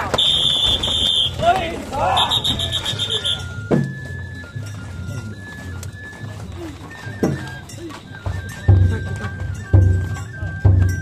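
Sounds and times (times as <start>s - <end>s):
taiko drum beats: 0.0s - 5.2s, 6.2s - 11.0s
bamboo flute melody: 0.0s - 11.0s
crowd voices: 0.0s - 11.0s
shrill whistle pulses: 0.1s - 5.4s.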